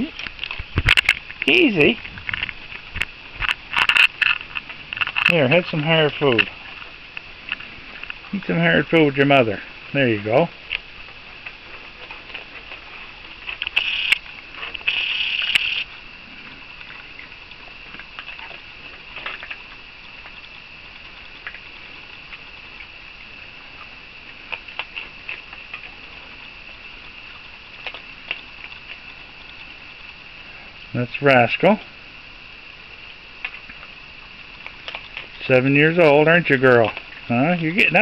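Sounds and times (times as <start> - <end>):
raccoons crunching kibble: 0.0 - 32.0, 32.7 - 38.0.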